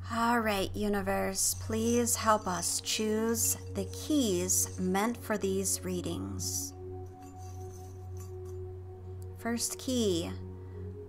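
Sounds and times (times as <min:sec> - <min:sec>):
singing bowl drone: 0:01.2 - 0:09.2.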